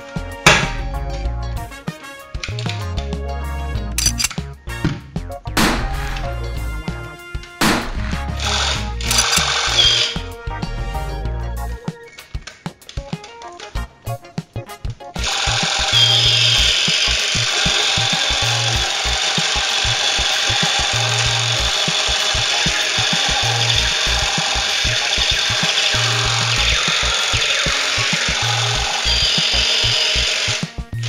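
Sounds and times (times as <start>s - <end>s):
background music beat: 0.0s - 31.0s
toy pistol electronic buzzing: 4.0s - 4.3s, 8.4s - 10.2s, 15.2s - 30.8s.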